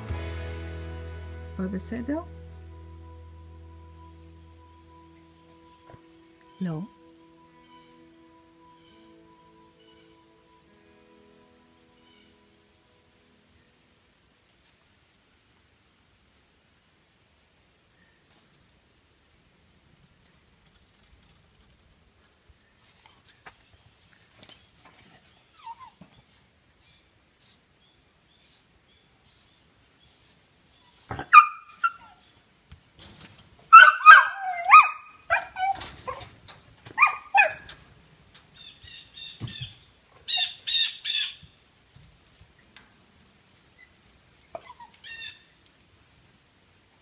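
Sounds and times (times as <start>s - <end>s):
small dog yapping: 30.1s - 32.4s, 33.7s - 37.8s, 44.5s - 45.5s.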